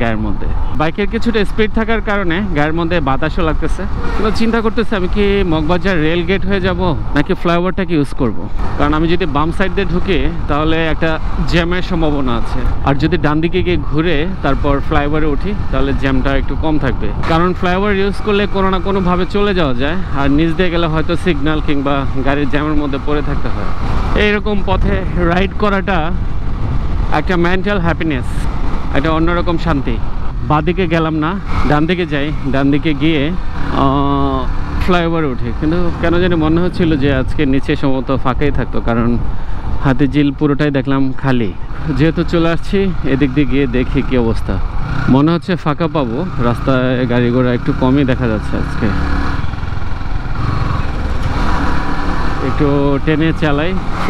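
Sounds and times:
man talking: 0.0 - 26.2, 27.0 - 49.1, 52.4 - 54.0
motorcycle engine: 0.0 - 40.3, 41.2 - 54.0
wind rumble: 0.0 - 48.2, 49.0 - 54.0
road noise: 0.0 - 54.0
wind noise: 23.5 - 32.5.

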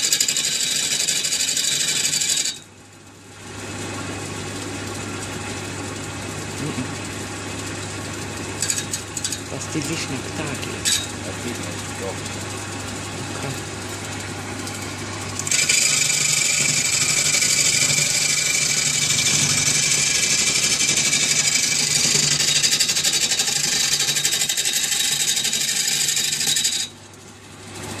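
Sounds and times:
lathe motor humming: 0.0 - 2.6, 3.4 - 26.9
chisel scraping spinning wood: 0.0 - 2.7, 6.5 - 27.0.

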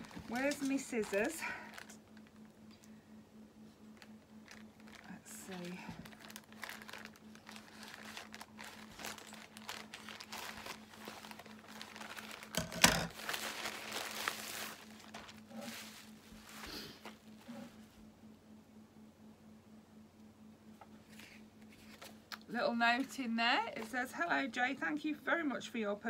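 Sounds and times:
packaging crinkling and rustling: 0.0 - 2.9, 3.9 - 17.8, 21.1 - 22.5.

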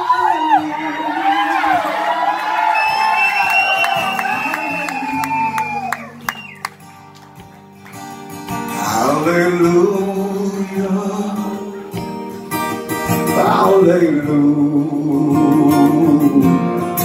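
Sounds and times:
man singing wordless vocal run: 0.0 - 2.1, 8.7 - 11.9, 13.2 - 16.8
acoustic guitar playing: 2.8 - 17.0.

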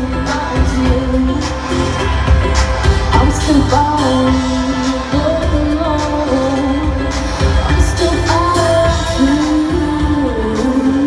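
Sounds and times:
live pop band playing: 0.0 - 11.0.

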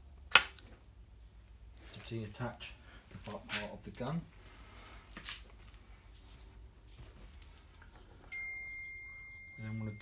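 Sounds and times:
steady high-pitched tone: 8.3 - 10.0.

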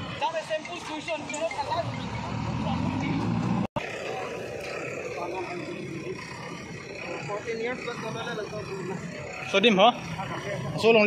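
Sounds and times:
diesel engine rumbling: 0.0 - 11.0
people's voices: 0.0 - 11.0.

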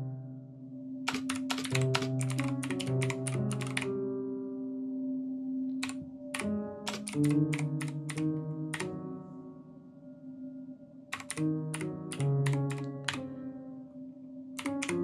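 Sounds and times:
keyboard keys clacking: 1.1 - 3.9, 5.8 - 9.1, 11.1 - 13.4, 14.6 - 15.0.

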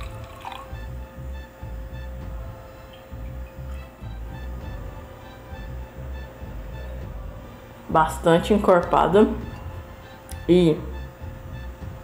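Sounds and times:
coffee pouring into metal mug: 0.0 - 0.8
background music with low beat: 0.0 - 12.0.

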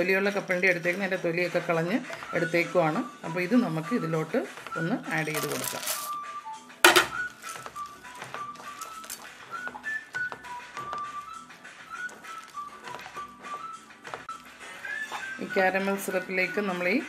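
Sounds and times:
soft background music: 0.0 - 17.0
peanuts rattling into a pan: 5.2 - 6.2
wooden spatula stirring in a pan: 7.2 - 16.0.

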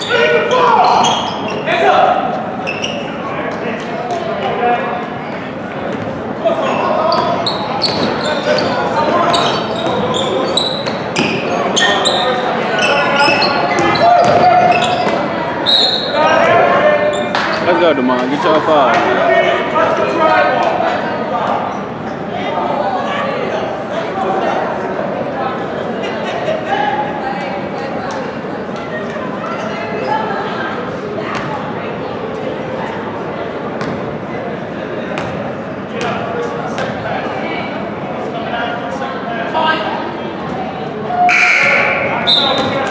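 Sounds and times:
sneaker squeaks: 0.0 - 1.8, 2.6 - 3.5, 6.6 - 17.8, 29.4 - 30.3, 41.1 - 42.9
crowd chatter: 0.0 - 42.9.

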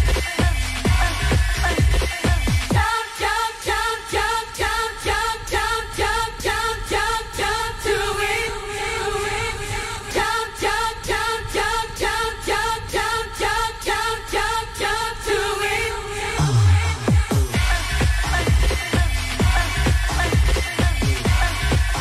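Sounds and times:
electronic dance music: 0.0 - 6.7, 16.0 - 22.0.

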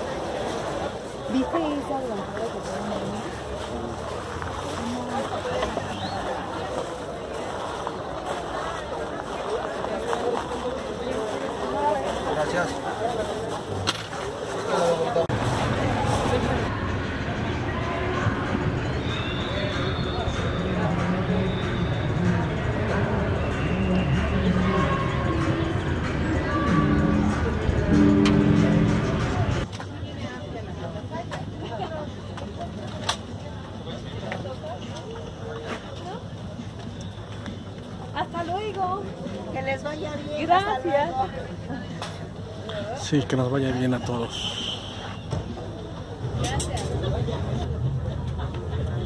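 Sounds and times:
people talking: 0.0 - 49.0.

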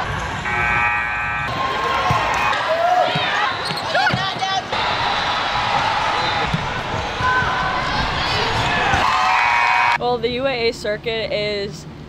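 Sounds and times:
voices in a gym: 1.7 - 11.8
sneakers squeaking: 2.0 - 4.7, 5.7 - 9.0.

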